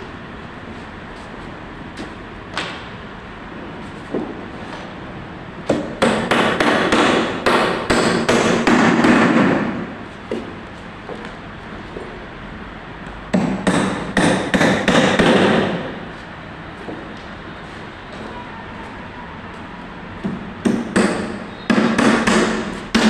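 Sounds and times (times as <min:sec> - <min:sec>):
hammer blows on timber: 0:20.2 - 0:23.0.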